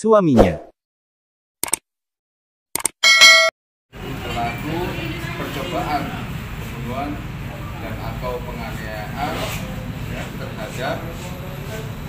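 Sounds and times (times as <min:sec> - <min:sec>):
bright bell ding: 0:03.0 - 0:03.5.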